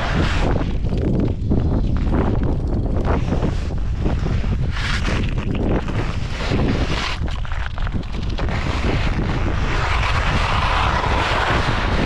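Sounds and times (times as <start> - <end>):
wind rushing over microphone: 0.0 - 12.0
skis hissing over snow: 8.5 - 12.0.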